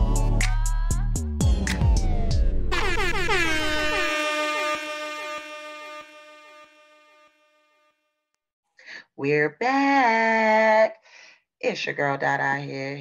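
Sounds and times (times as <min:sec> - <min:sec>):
loud horn-like tone dropping in pitch: 0:02.2 - 0:08.2.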